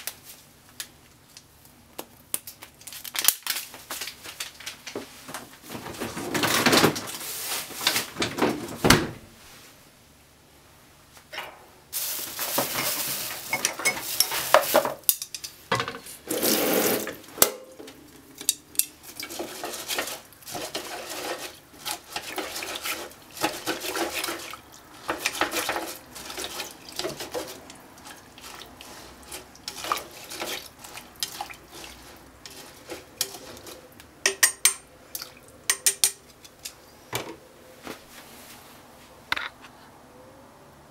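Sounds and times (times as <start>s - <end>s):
wet stirring and scraping: 12.0s - 36.9s
utensil clinking against pot: 12.6s - 16.0s, 17.4s - 36.8s.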